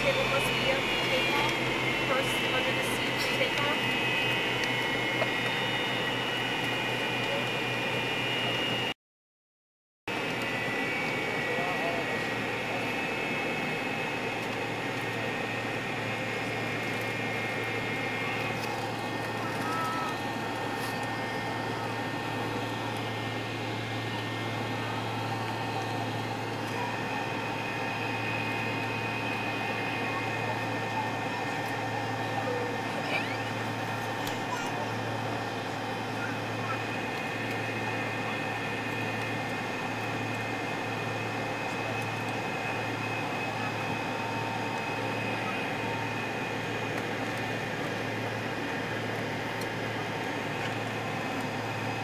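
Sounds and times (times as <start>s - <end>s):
airplane cabin hum: 0.0s - 8.9s, 10.1s - 52.0s
jet engine whine: 0.0s - 9.0s, 10.1s - 52.0s.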